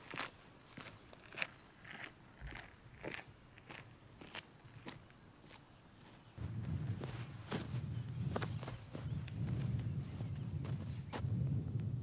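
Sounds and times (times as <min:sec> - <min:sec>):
footsteps on gravel: 0:00.0 - 0:10.9.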